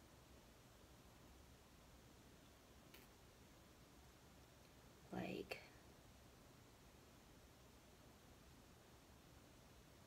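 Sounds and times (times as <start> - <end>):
woman whispering: 5.1 - 5.8.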